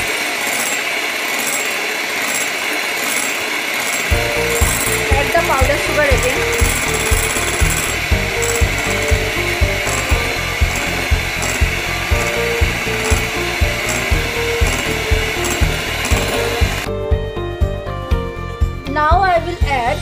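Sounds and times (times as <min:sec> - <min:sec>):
electric hand mixer running: 0:00.0 - 0:16.9.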